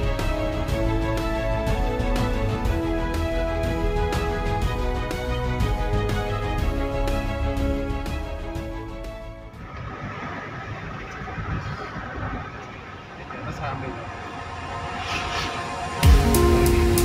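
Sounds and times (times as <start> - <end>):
intro music: 0.0 - 17.0
car road and engine noise: 7.5 - 17.0.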